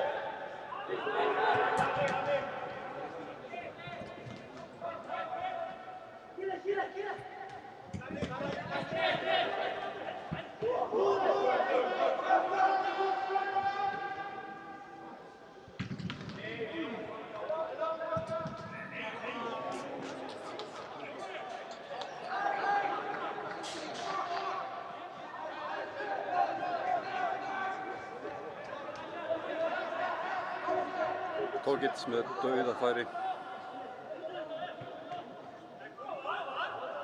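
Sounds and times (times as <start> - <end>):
players shouting in echoing hall: 0.0 - 15.7, 16.4 - 37.0.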